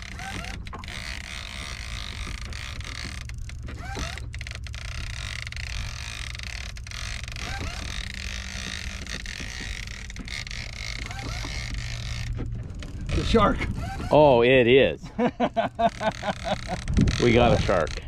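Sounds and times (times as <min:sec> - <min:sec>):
boat engine humming: 0:00.0 - 0:18.0.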